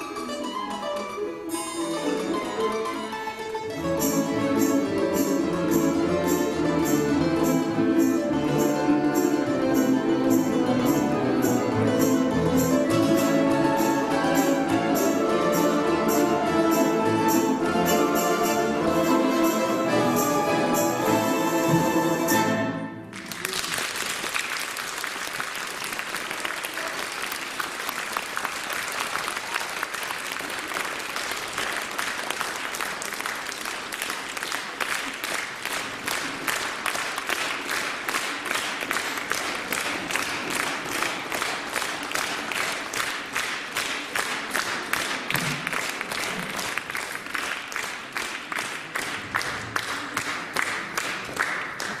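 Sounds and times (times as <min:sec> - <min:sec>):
rhythmic clapping in unison: 0:04.0 - 0:52.0
audience applauding: 0:23.0 - 0:52.0.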